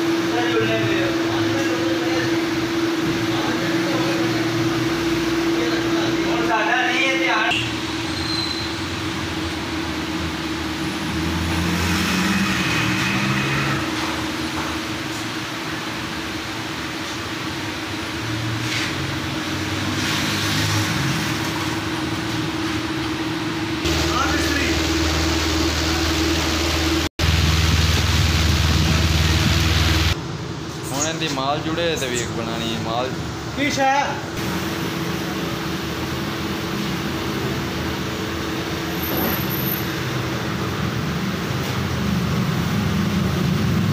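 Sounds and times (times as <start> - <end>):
traffic rumbling: 0.0 - 43.9.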